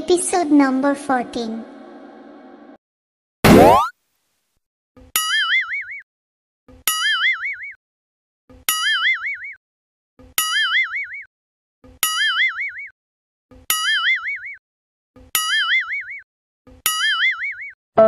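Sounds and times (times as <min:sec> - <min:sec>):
cartoon boing sound effect: 0:03.5 - 0:03.9.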